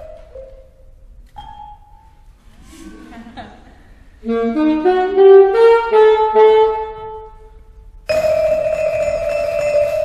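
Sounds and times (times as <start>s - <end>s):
vibraphone ringing: 1.4s - 2.2s, 8.1s - 10.0s
saxophone: 4.2s - 10.0s.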